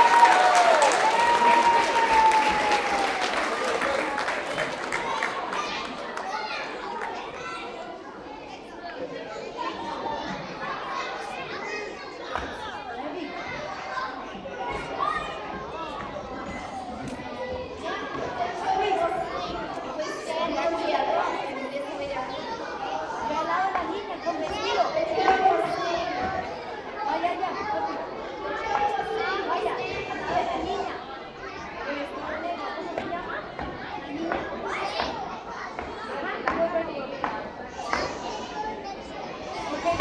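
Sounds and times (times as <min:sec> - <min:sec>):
children chattering: 0:00.0 - 0:40.0.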